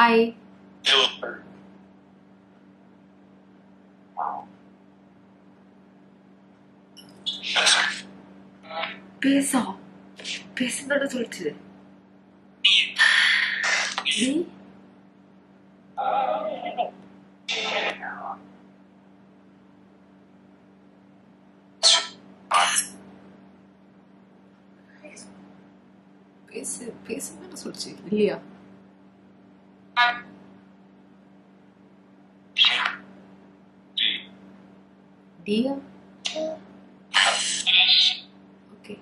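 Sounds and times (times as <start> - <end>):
steady low hum: 0.0 - 39.0
harsh static noise: 0.7 - 1.8, 7.1 - 11.5, 12.6 - 14.9, 15.9 - 18.6, 29.9 - 30.6, 32.4 - 34.6, 36.2 - 38.5
voice fragment from phone: 0.8 - 1.4, 4.2 - 4.5, 7.3 - 8.1, 17.5 - 18.4, 30.0 - 30.3, 32.6 - 33.0, 34.0 - 34.3, 37.2 - 38.3.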